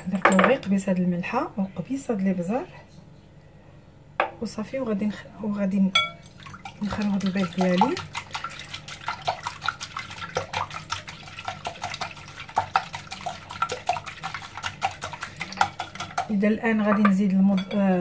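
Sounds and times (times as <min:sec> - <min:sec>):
liquid egg slapping: 0:06.2 - 0:17.3
whisk clicking against glass bowl: 0:06.7 - 0:17.8.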